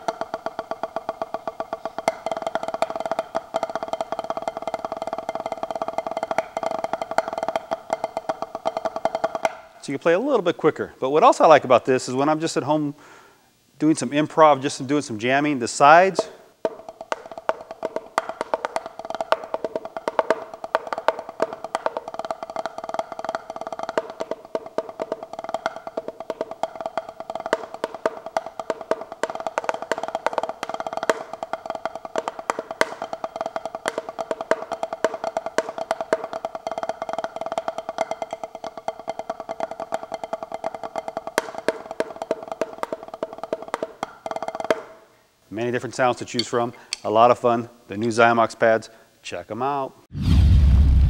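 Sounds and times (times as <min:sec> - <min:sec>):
drumsticks on a practice pad: 0:00.0 - 0:09.7, 0:16.2 - 0:45.0, 0:46.3 - 0:47.3.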